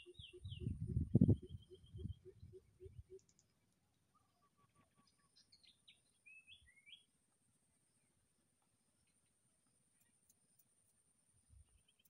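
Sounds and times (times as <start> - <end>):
birds chirping: 0.0 - 7.1.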